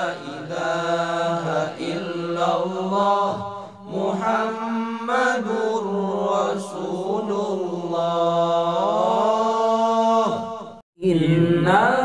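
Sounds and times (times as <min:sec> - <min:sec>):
a cappella group chanting: 0:00.0 - 0:12.0.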